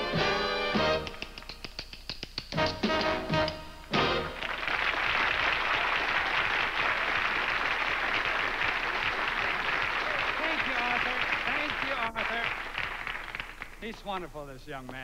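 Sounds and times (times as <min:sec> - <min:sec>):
big band brass chords: 0:00.0 - 0:01.2, 0:02.6 - 0:04.5
tap shoes clicking on stage: 0:00.6 - 0:05.9, 0:09.8 - 0:15.0
audience applauding: 0:04.0 - 0:14.4.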